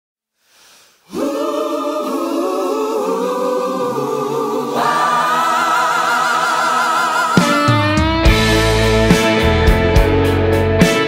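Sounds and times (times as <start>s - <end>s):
choir-like vocal harmonies: 0.9s - 9.5s
higher voice singing: 1.1s - 8.7s.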